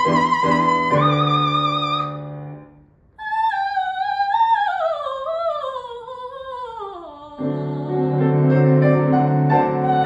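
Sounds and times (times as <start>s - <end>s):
soprano singing: 0.0s - 2.5s, 3.2s - 10.0s.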